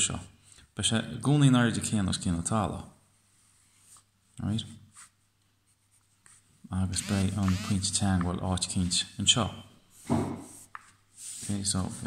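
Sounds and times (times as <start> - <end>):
pencil scratching on paper: 7.0 - 7.8, 10.4 - 12.0.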